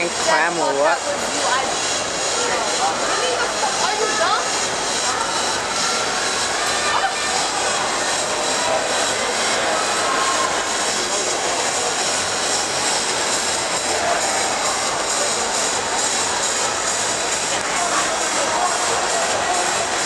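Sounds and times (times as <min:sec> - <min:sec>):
crowd roar in echoing arena: 0:00.0 - 0:20.0.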